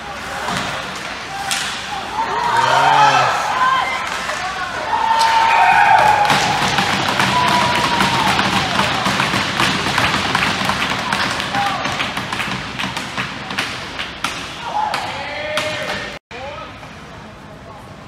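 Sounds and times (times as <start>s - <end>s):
people shouting: 1.3s - 10.1s
spectators clapping and cheering: 2.3s - 16.2s.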